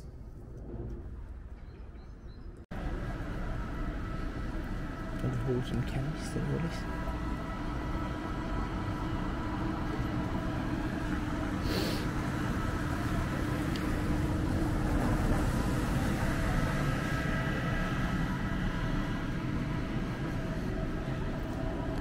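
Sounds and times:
vehicle engine running: 0:02.7 - 0:22.0.

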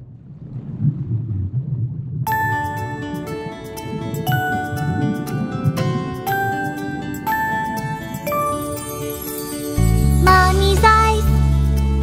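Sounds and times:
underwater rumble of water: 0:00.0 - 0:09.3.

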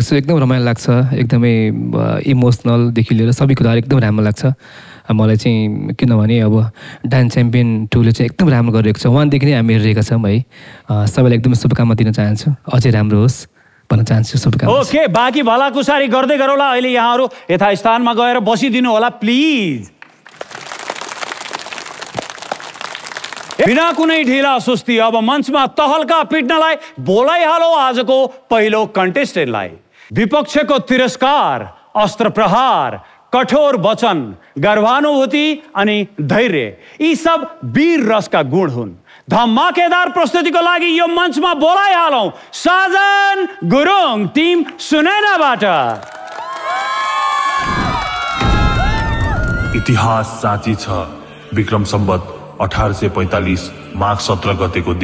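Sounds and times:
people clapping: 0:20.0 - 0:24.4, 0:45.8 - 0:49.8
young people cheering and shouting: 0:46.0 - 0:50.2.

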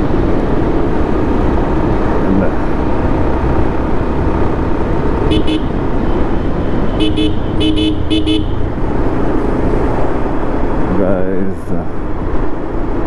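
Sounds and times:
motorcycle horn toots: 0:05.3 - 0:05.7, 0:06.9 - 0:08.6.

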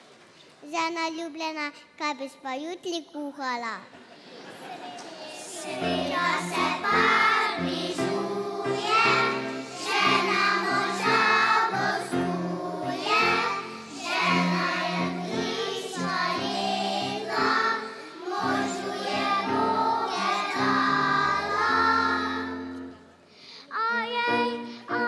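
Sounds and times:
children's choir singing: 0:04.4 - 0:23.1, 0:23.8 - 0:25.0.

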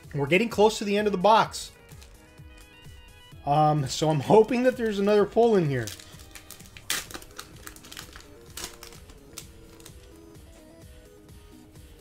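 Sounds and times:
quiet background music: 0:00.0 - 0:12.0
foil wrapper crinkling: 0:05.7 - 0:10.4.

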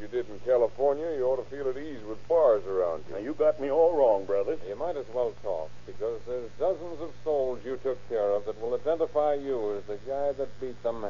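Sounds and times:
men talking: 0:00.0 - 0:11.0
steady low hum: 0:00.0 - 0:11.0.

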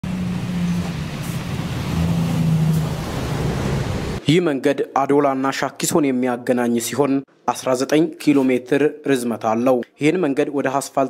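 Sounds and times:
minibus driving past: 0:00.0 - 0:04.2.

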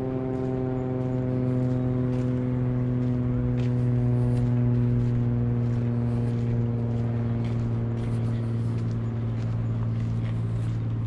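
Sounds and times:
footsteps on dirt path: 0:00.0 - 0:11.0
steady low hum: 0:00.0 - 0:11.0.

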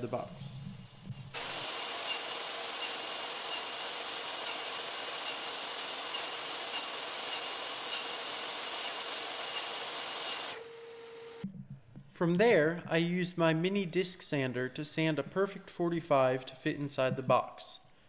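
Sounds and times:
faint low hum: 0:00.0 - 0:01.4, 0:11.4 - 0:15.5
table saw whining: 0:01.3 - 0:11.4.

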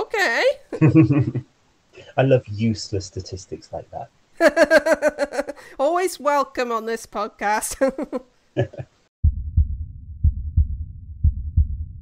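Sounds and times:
heartbeat double thumps: 0:09.2 - 0:12.0.

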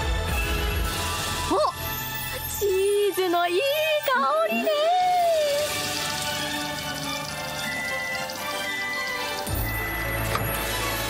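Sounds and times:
soft background music: 0:00.0 - 0:11.0
food bubbling and sizzling: 0:05.2 - 0:11.0.

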